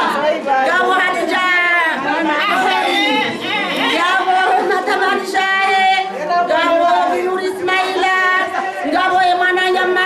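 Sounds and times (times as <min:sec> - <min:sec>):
women chattering: 0:00.0 - 0:10.0
woman speaking into a microphone: 0:00.6 - 0:10.0.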